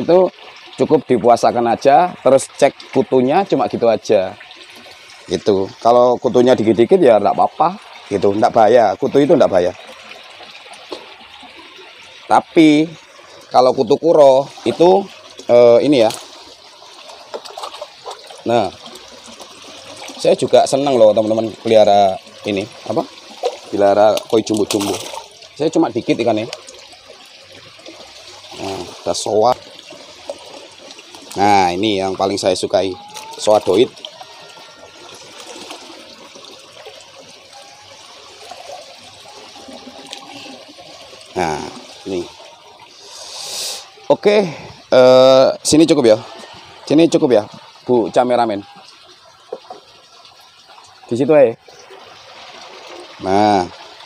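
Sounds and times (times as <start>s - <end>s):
water pouring and splashing: 0.0s - 54.0s.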